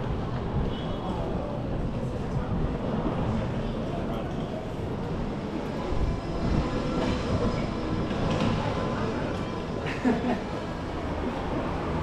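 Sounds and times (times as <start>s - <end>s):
tram running on rails: 0.0s - 12.0s.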